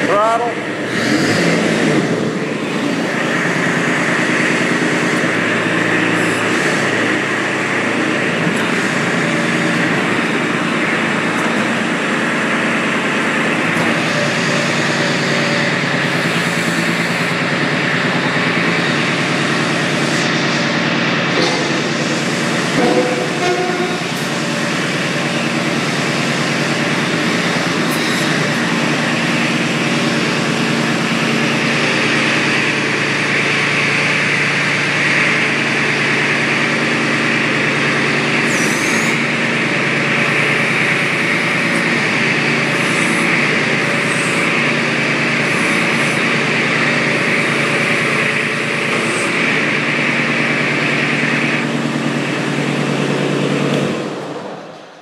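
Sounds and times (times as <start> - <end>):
diesel engine running: 0.0 - 55.0
hydraulic whine and hiss: 13.6 - 17.5, 21.6 - 30.7, 38.4 - 39.3, 40.3 - 51.8.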